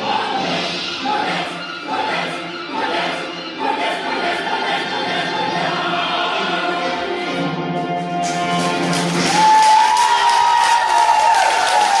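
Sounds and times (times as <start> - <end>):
children's choir singing: 0.0 - 8.2
musical accompaniment: 0.0 - 12.0
people clapping: 8.0 - 12.0.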